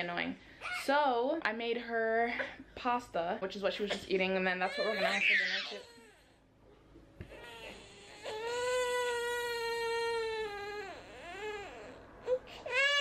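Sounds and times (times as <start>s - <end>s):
toddler crying: 4.6s - 6.2s, 7.3s - 13.0s.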